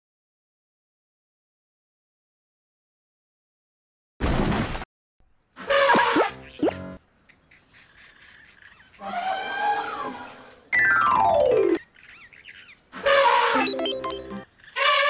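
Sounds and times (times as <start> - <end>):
pitched cartoon sound effect: 5.8 - 6.8
trumpeting elephant call: 9.0 - 10.7.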